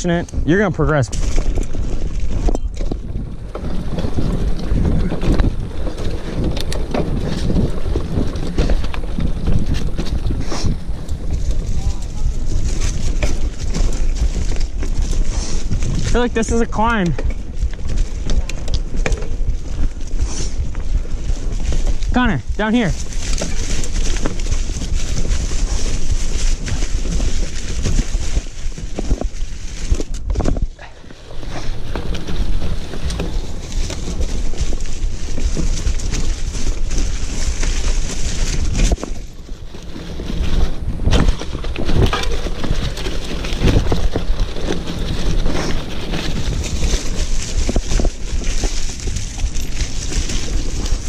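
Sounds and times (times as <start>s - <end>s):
bike rattling over bumps: 0.0s - 51.0s
bike tyres rolling through leaves: 0.0s - 51.0s
wind rumble on microphone: 0.0s - 51.0s.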